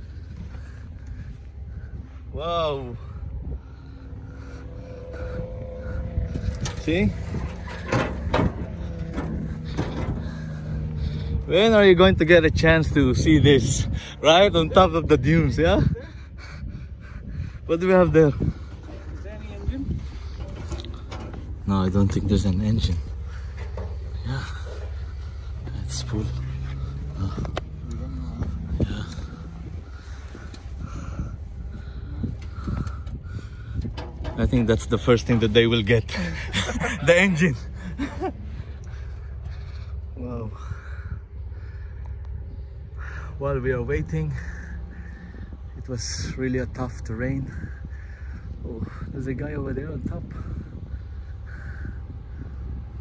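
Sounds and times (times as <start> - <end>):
wind on microphone: 0.0 - 35.1, 44.4 - 53.0
vehicle engine idling: 0.0 - 53.0.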